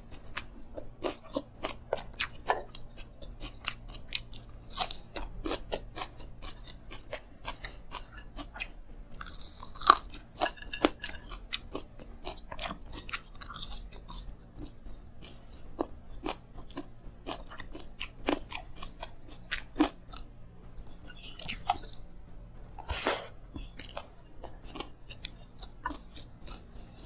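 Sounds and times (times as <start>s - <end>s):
chewing and crunching food: 0.0s - 27.0s.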